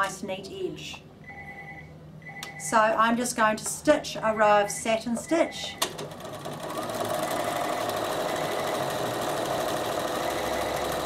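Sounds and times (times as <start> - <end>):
sewing machine stitching: 5.8 - 11.0.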